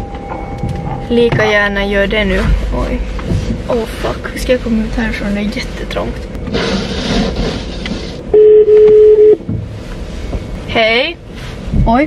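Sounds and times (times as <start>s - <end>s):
phone ringback beep: 8.3s - 9.4s.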